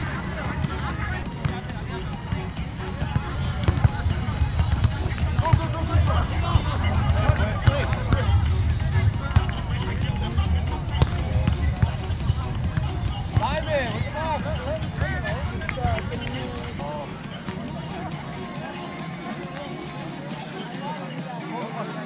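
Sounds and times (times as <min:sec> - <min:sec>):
distant voices: 0:00.0 - 0:21.2
music: 0:00.0 - 0:22.0
hand hitting volleyball: 0:03.6 - 0:04.0.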